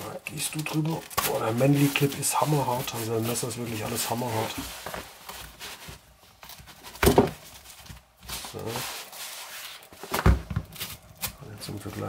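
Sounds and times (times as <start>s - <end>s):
nylon fabric rustling: 0.0s - 11.1s.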